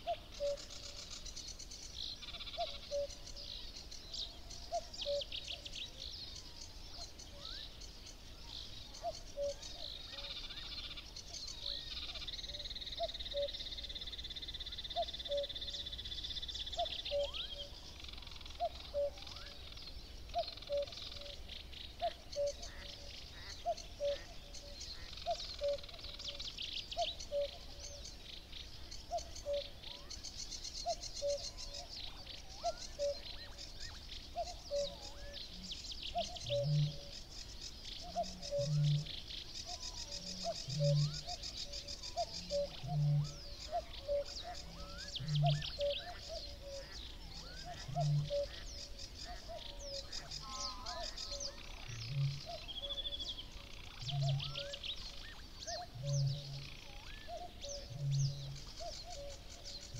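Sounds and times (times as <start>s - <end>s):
cuckoo calling: 0.0s - 1.3s, 2.4s - 3.4s, 4.3s - 5.7s, 8.9s - 16.0s, 16.6s - 19.7s, 20.3s - 28.0s, 29.0s - 30.2s, 30.8s - 35.4s, 36.1s - 37.2s, 38.0s - 59.9s
songbird trills and chatter: 0.0s - 59.9s.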